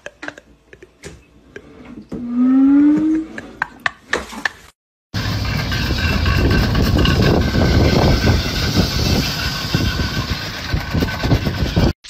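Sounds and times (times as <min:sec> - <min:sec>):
vehicle rumbling on a road: 0:05.2 - 0:11.6.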